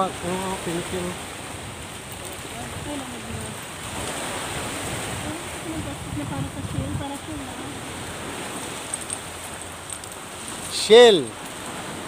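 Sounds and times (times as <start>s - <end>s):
sea waves on rocky shore: 0.0s - 12.0s.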